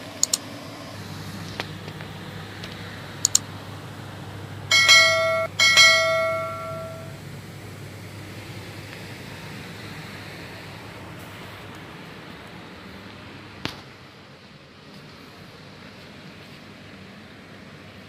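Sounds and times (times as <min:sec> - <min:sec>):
steady low hum: 0:00.0 - 0:18.0
sharp click: 0:00.2 - 0:00.4, 0:03.2 - 0:03.4
bell-like chime: 0:04.7 - 0:07.2.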